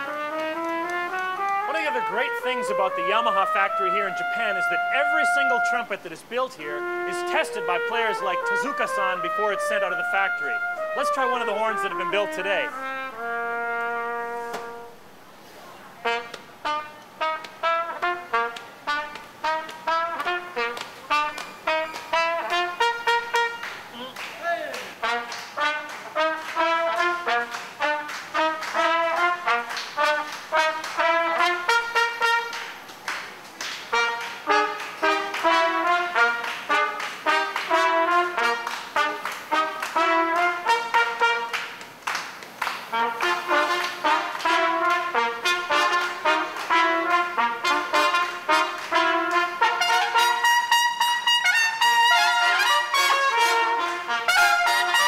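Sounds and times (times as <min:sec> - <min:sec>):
trumpet playing fast melody: 0:00.0 - 0:15.2, 0:15.9 - 0:41.8, 0:42.9 - 0:55.0.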